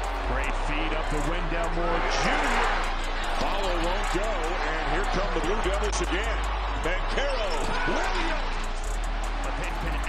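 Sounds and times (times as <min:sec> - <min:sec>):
arena crowd noise: 0:00.0 - 0:10.0
low background music: 0:00.0 - 0:10.0.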